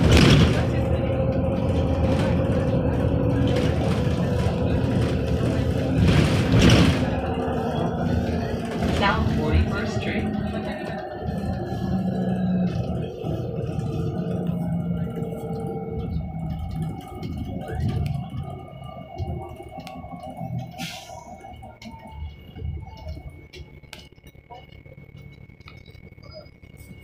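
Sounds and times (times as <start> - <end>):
bus engine drone: 0.0 - 27.0
thin steady high whine: 17.6 - 27.0.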